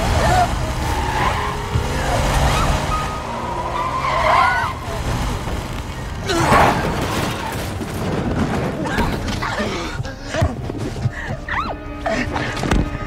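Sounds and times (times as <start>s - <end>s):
car engine rumbling: 0.0s - 8.8s
tyres squealing: 0.0s - 10.5s.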